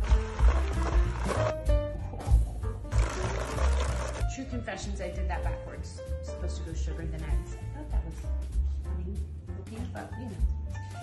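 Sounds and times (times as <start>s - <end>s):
electric hand mixer running: 0.0s - 1.5s, 2.9s - 4.3s.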